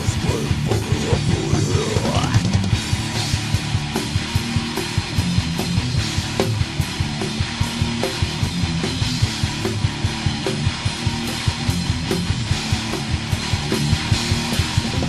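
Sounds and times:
metal band playing: 0.0 - 15.0.

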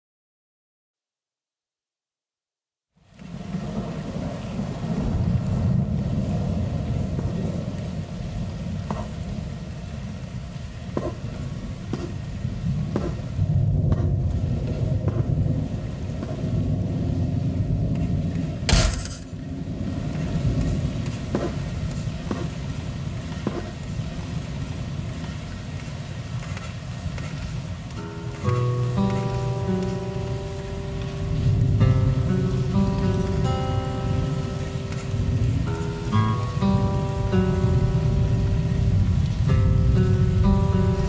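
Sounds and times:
low rumbling noise drone: 3.2 - 26.3, 27.7 - 41.0.

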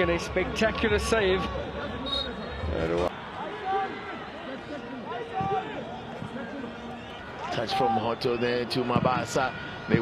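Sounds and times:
stadium crowd calling and singing: 0.0 - 10.0.

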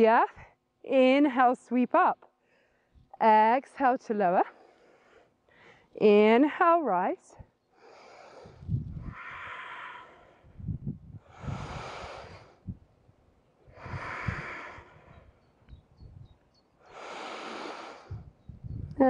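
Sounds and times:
woman breathing: 2.4 - 3.0, 4.5 - 6.0, 7.8 - 12.8, 13.6 - 15.4, 16.8 - 18.4.

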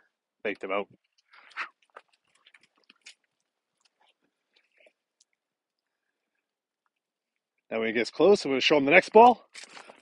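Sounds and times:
faint crunches and ticks: 0.5 - 7.5.

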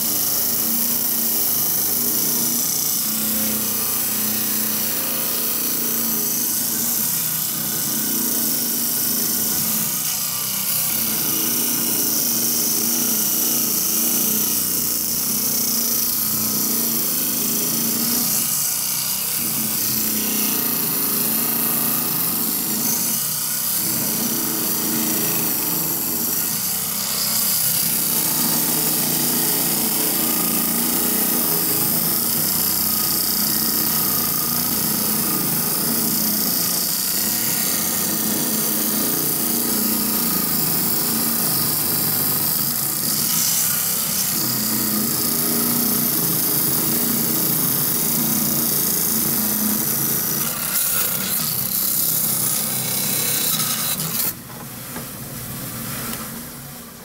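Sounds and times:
saw blade grinding through rock: 0.0 - 54.4
saw motor running: 0.0 - 54.5.

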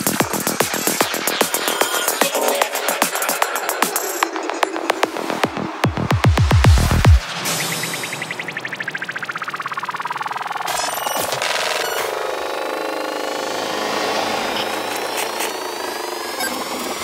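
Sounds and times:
synthesizer textures: 0.0 - 17.0
noise sweeps: 0.6 - 17.0
fast pulsing sound: 6.5 - 17.0.

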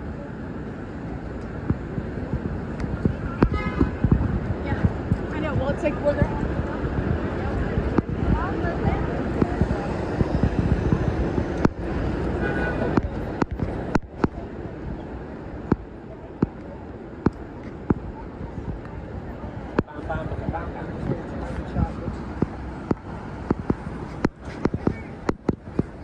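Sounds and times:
pedestrian voices: 0.0 - 26.0
traffic rumble: 0.0 - 26.0.

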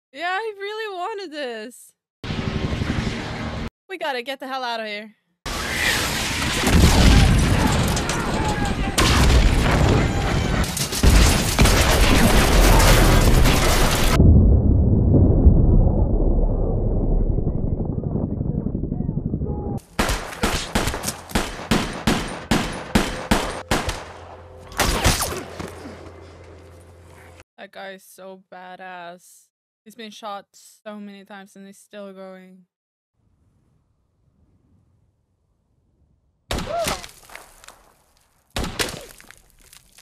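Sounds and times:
continuous gunfire: 6.4 - 14.2, 19.8 - 25.6
muffled low rumble: 14.2 - 19.8
single rifle shots: 19.8 - 25.5.

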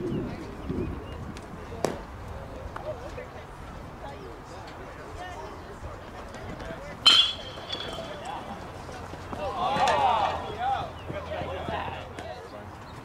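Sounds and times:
voices shouting: 7.0 - 12.2
metal bat hitting ball: 7.1 - 8.2.

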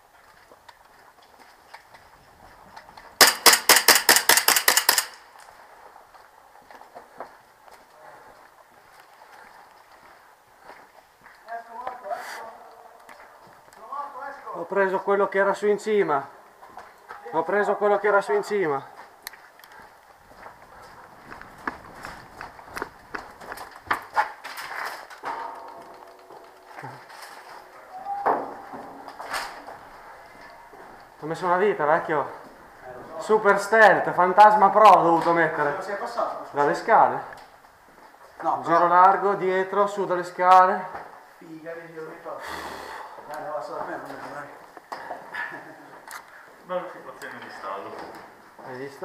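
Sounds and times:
footsteps: 0.0 - 39.4
airsoft pistol rapid cracks: 3.2 - 5.3.

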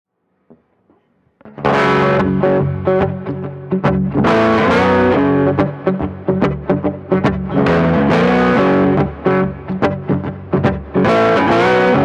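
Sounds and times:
faint guitar notes: 0.5 - 12.0
loud guitar chord ringing: 1.4 - 12.0.

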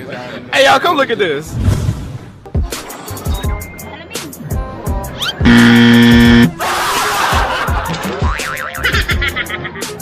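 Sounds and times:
music with steady beat: 4.4 - 6.6
horn-like buzzer tone: 5.4 - 6.5
warbling electronic tones: 5.5 - 6.5.

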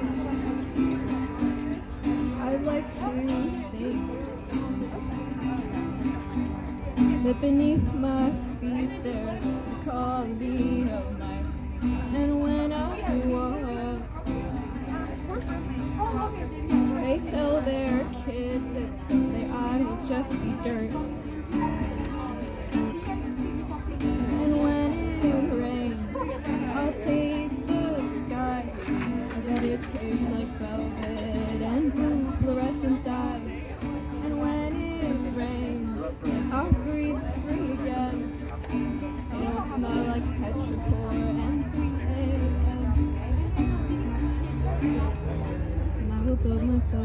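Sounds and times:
acoustic guitar: 0.0 - 47.0
woman singing: 1.6 - 5.4, 7.0 - 15.4, 16.9 - 22.0, 24.0 - 43.5, 46.0 - 47.0.

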